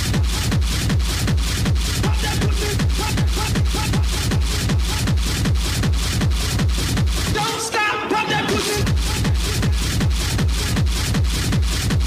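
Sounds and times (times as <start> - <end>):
pounding kick drum: 0.0 - 7.4, 8.5 - 12.0
hissy hi-hats and percussion: 0.0 - 7.6, 8.4 - 12.0.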